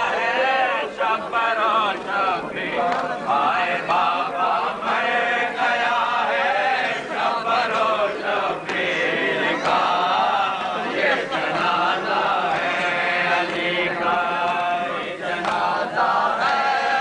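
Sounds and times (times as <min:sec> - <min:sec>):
men chanting a lament: 0:00.0 - 0:17.0.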